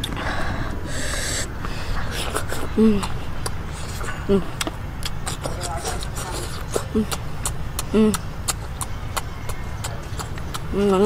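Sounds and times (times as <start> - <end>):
boy humming: 0.0 - 3.2, 4.3 - 4.6, 6.7 - 7.2, 7.9 - 8.2
boy chewing wetly: 0.0 - 11.0
low background rumble: 0.0 - 11.0
lip-smacking: 0.9 - 11.0.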